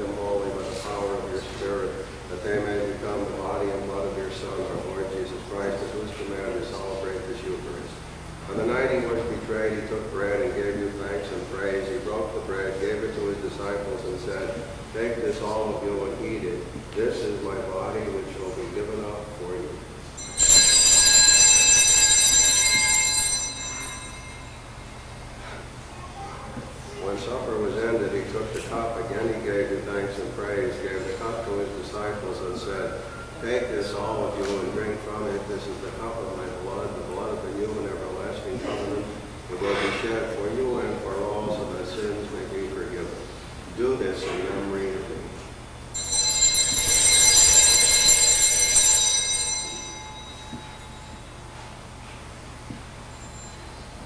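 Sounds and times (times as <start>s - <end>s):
small altar bells ringing: 20.0s - 25.8s, 45.9s - 52.1s, 53.0s - 54.0s.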